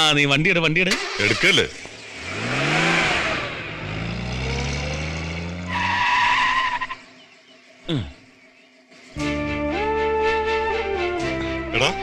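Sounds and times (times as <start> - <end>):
jeep engine revving: 0.9 - 6.9
tyre skidding and squealing: 0.9 - 7.2.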